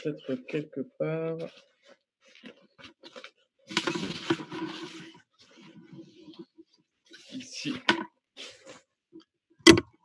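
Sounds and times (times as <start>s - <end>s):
rustling of things on a desk: 1.4s - 9.9s.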